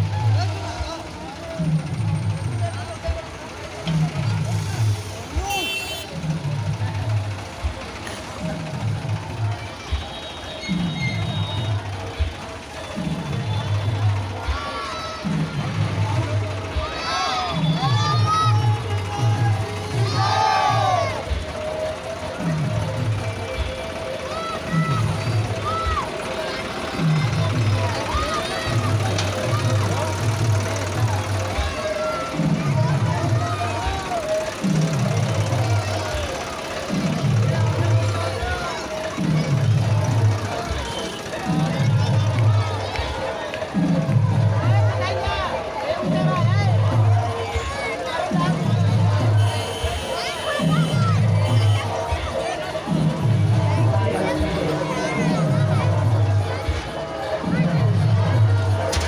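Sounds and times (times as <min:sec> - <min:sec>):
voices: 0:00.0 - 0:59.0
loud dance music: 0:49.8 - 0:59.0.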